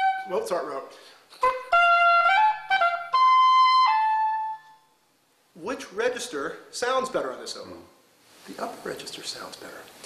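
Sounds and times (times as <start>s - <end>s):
oboe melody: 0.0s - 0.4s, 1.4s - 5.0s.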